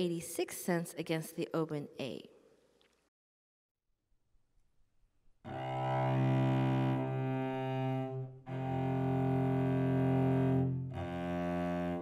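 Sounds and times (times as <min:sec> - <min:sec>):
bowed cello long notes: 0:05.5 - 0:12.0.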